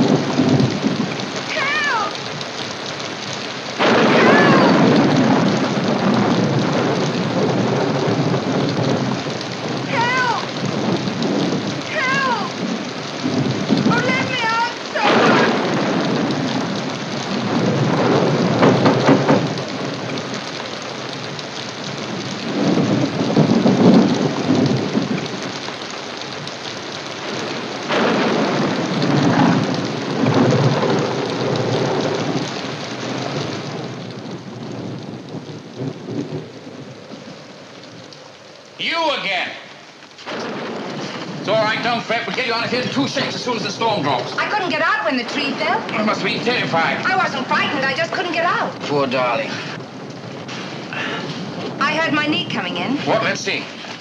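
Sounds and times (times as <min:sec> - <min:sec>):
heavy rain: 0:00.0 - 0:54.0
thunder rolling: 0:00.0 - 0:54.0.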